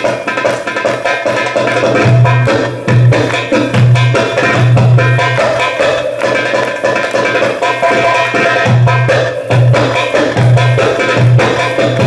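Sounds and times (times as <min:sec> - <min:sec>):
goblet drum solo: 0:00.0 - 0:12.0.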